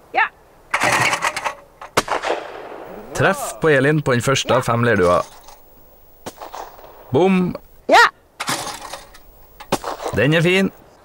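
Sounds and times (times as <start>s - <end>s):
shotgun shot: 2.0s - 2.9s, 9.7s - 10.2s.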